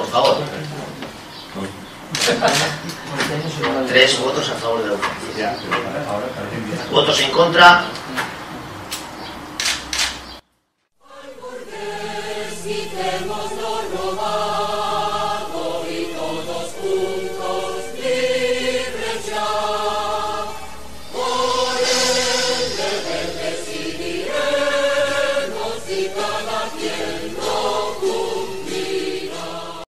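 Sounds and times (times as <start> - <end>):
choir singing sustained chords: 11.0 - 29.9.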